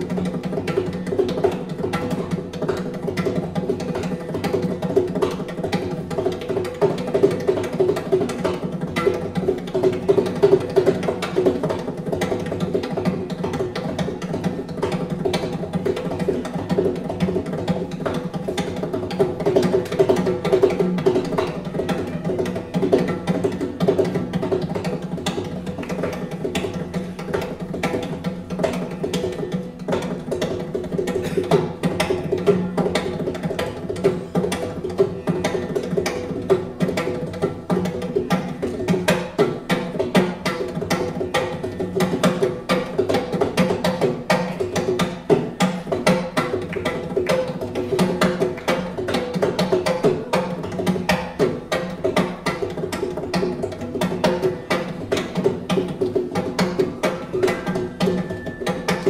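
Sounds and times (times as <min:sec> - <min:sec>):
barrel drum played fast: 0:00.0 - 0:59.0.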